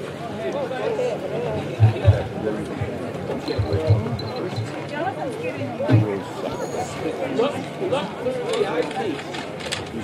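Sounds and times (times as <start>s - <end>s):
indistinct talking: 0.0s - 10.0s.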